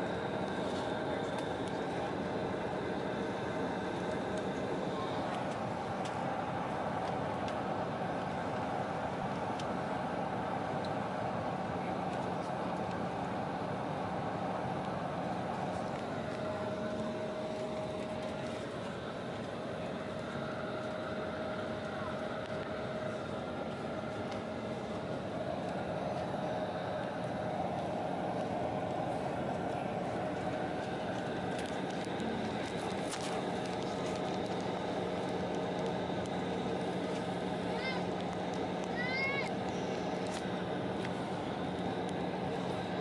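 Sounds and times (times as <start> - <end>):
high engine tone: 0.0 - 43.0
jet engines rushing in cabin: 0.0 - 43.0.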